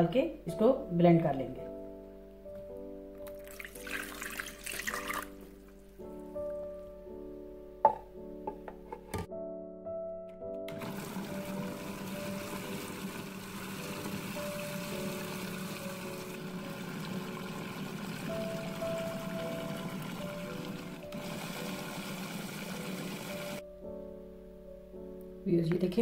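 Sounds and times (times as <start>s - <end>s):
background music: 0.0s - 26.0s
water pouring into plastic bowl: 3.2s - 5.9s, 10.7s - 23.6s
electric food chopper running: 10.7s - 23.6s.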